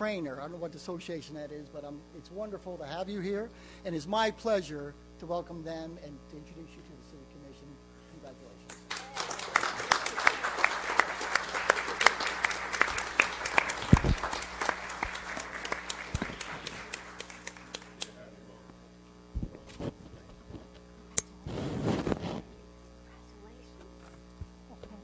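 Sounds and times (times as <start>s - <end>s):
audience applauding: 8.8s - 18.2s.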